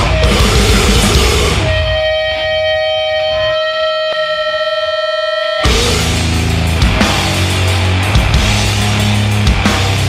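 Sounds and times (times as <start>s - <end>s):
electric guitar feedback: 0.0s - 10.0s.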